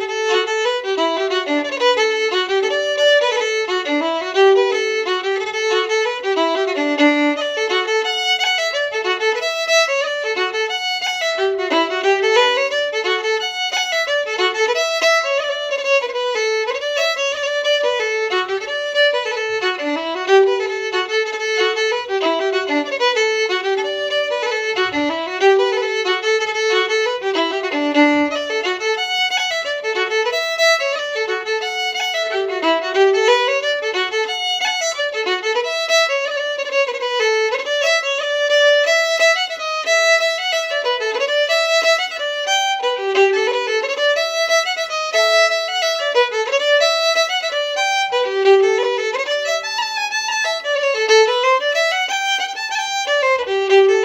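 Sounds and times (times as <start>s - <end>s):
solo fiddle tune: 0.0s - 54.0s.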